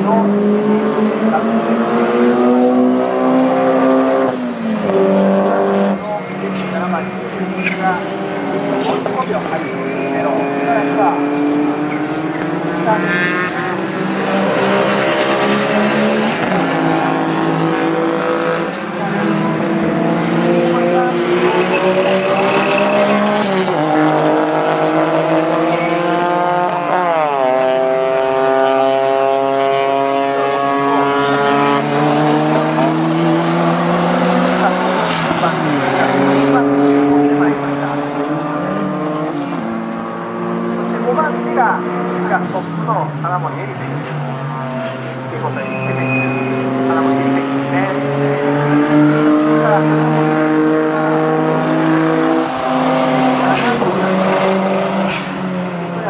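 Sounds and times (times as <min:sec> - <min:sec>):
racing car engine revving: 0:00.0 - 0:56.0.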